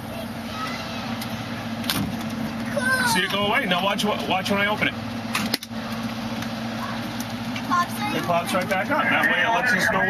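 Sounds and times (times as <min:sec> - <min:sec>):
low engine hum: 0:00.0 - 0:10.0.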